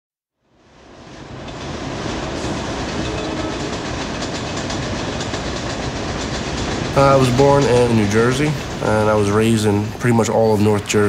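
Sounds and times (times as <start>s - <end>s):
train wheels clattering over rails: 1.0s - 11.0s.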